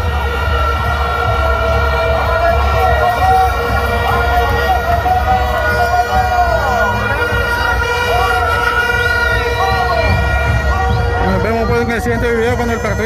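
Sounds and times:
wavering crowd voices: 0.0 - 13.0.

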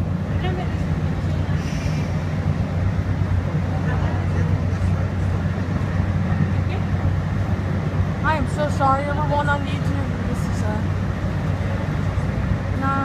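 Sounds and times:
light rail car hum and rumble: 0.0 - 13.0.

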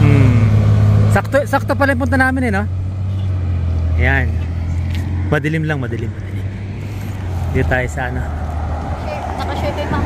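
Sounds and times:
road traffic engine hum: 0.0 - 10.0.

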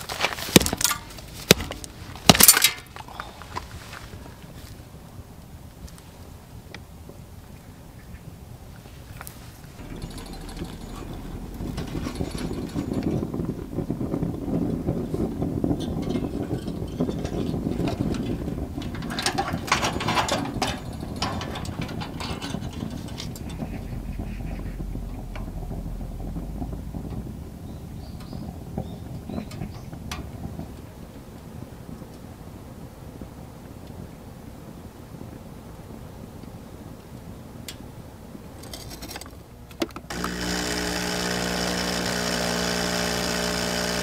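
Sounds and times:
sharp crackles and clatter: 0.0 - 6.8, 8.7 - 32.3, 38.6 - 44.0
fire crackling in wood stove: 0.0 - 7.2, 8.7 - 34.1, 40.1 - 44.0.

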